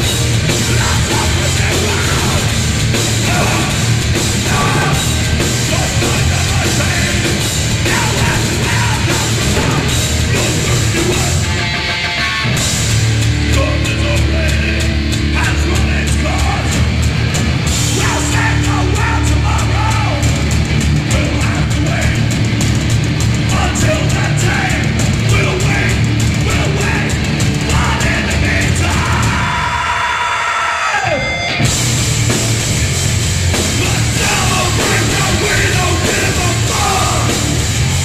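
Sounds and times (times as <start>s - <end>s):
bass: 0.0s - 38.0s
distorted electric guitars: 0.0s - 38.0s
drums: 0.0s - 38.0s
punk band playing: 0.0s - 38.0s.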